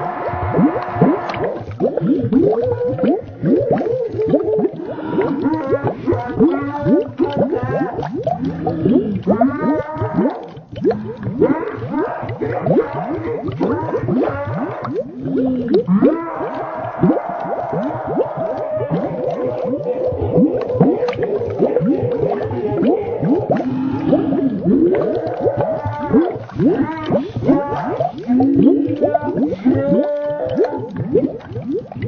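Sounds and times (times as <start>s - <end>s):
slowed boy screaming moaning tones: 0.0s - 1.6s, 2.4s - 10.4s, 11.3s - 31.1s.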